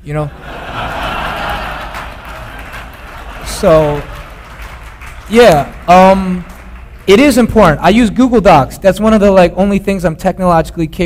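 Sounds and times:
audience laughing: 0.2 - 5.9
audience clapping: 0.4 - 7.9.

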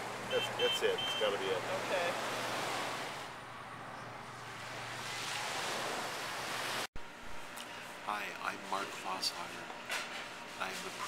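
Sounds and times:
small waves washing onto sand: 4.6 - 6.9.

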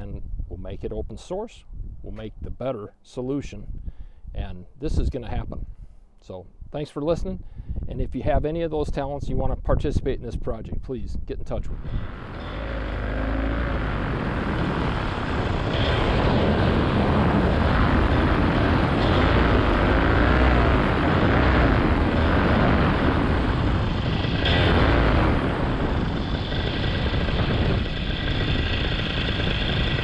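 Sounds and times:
wind noise on microphone: 0.0 - 2.7, 3.4 - 30.0
paramotor engine and propeller: 11.7 - 30.0.

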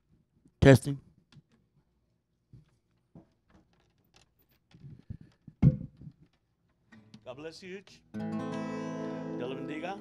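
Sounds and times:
microphone handling knocks: 4.8 - 6.3.

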